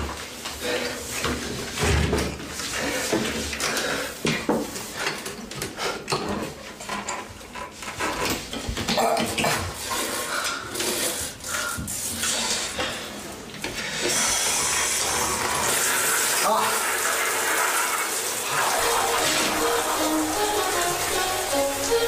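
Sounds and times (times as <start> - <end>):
shower water running: 0.0 - 6.7, 9.1 - 22.0
music: 18.7 - 22.0.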